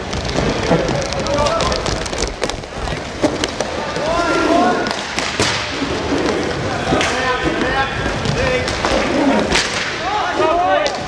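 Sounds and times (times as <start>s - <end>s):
background crowd din: 0.0s - 11.0s
hockey sticks cracking on puck: 0.0s - 11.0s.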